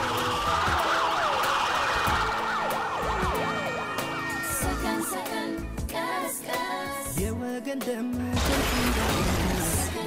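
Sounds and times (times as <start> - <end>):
emergency sirens wailing: 0.0 - 5.9.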